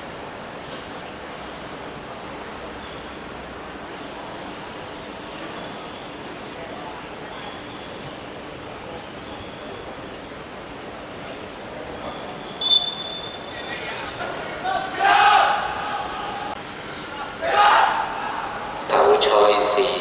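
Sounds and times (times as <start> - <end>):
outdoor noise: 0.0 - 20.0
group shouting together: 14.6 - 18.9.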